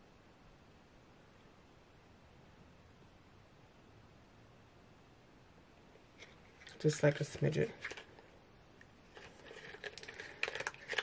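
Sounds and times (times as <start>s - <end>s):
makeup items clicking and rustling: 6.2s - 8.3s, 9.1s - 11.0s.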